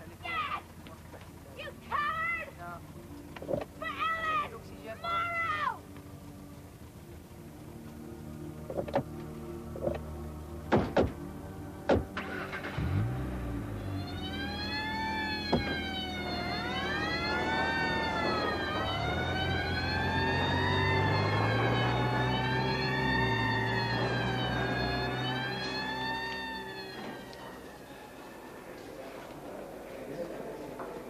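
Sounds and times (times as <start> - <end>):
police sirens wailing: 1.3 - 30.3
car engine running: 5.8 - 28.1
sharp knocks: 10.7 - 11.2, 15.5 - 15.8.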